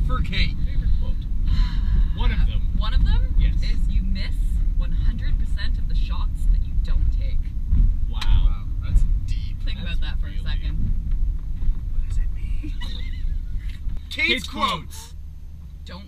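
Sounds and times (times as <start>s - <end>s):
truck engine and road rumble: 0.0s - 16.0s
voices: 12.0s - 15.2s.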